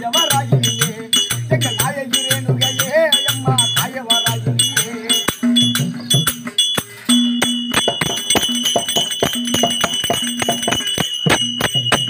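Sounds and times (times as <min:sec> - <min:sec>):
hand drums struck rhythmically: 0:00.0 - 0:12.0
high metallic ringing: 0:00.0 - 0:12.0.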